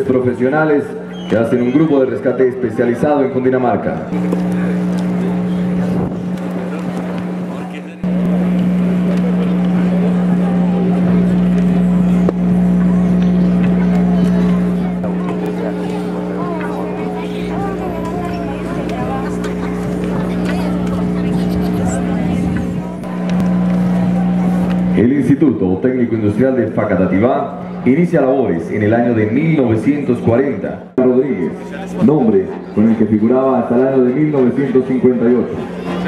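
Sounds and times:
electrical buzzing hum: 0.0s - 36.0s
faint crowd voices: 0.0s - 36.0s.

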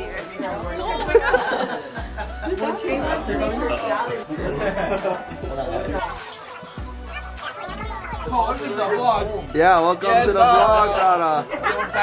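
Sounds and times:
people talking over one another: 0.0s - 1.6s, 2.3s - 12.0s
background music with bass: 0.0s - 12.0s.

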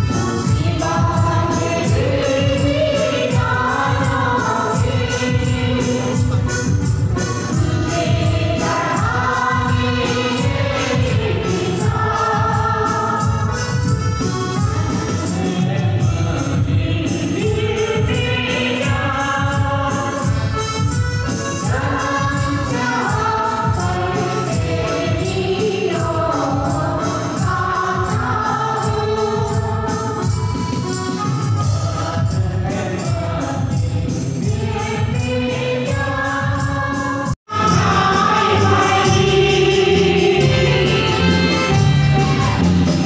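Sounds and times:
choir singing a gospel hymn: 0.0s - 43.0s
tambourine jingles: 0.0s - 43.0s.

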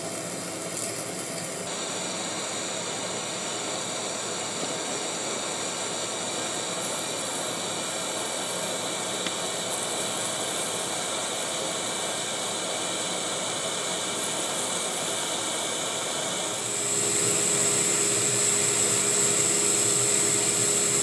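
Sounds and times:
high steady machine whine: 0.0s - 21.0s
metal lathe cutting: 0.0s - 21.0s.

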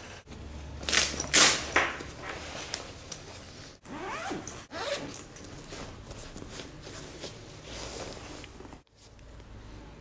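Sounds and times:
zipper on fabric bag: 3.9s - 5.2s.

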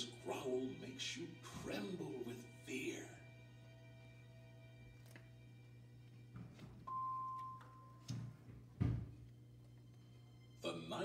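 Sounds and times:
low steady hum: 0.0s - 11.0s
book pages rustling: 4.9s - 5.3s
clear high tone: 6.9s - 8.1s
book thump: 8.1s - 9.2s.

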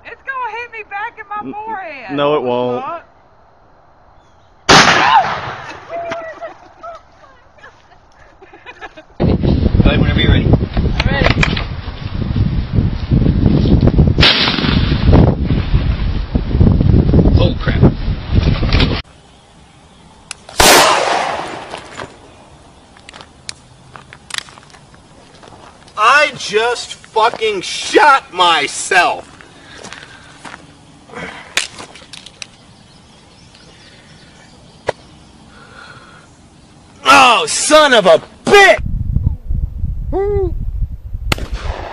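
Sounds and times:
rifle shot crack: 4.7s - 5.8s, 14.2s - 15.0s, 20.5s - 22.0s, 41.3s - 41.9s
sharp crack: 4.7s - 5.9s, 11.0s - 11.7s, 14.2s - 15.2s, 20.2s - 22.3s, 23.0s - 24.8s, 31.5s - 32.6s, 41.3s - 41.9s.

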